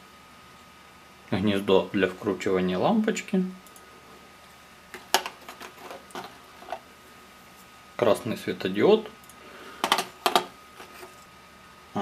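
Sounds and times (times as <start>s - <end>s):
plastic components clicking on tray: 9.8s - 10.5s.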